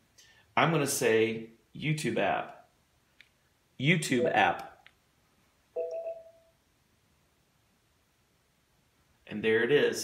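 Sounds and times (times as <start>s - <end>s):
short electronic chime: 5.8s - 6.5s.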